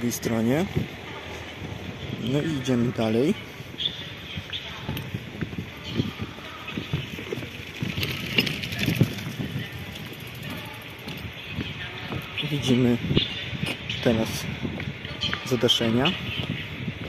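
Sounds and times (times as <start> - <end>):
outdoor background noise: 0.0 - 17.0
footsteps on rubber mats: 3.0 - 9.7.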